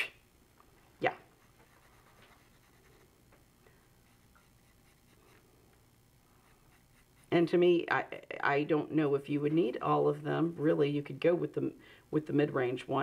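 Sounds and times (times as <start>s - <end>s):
pencil scratching on paper: 1.3s - 3.1s, 4.0s - 5.4s, 6.4s - 7.5s.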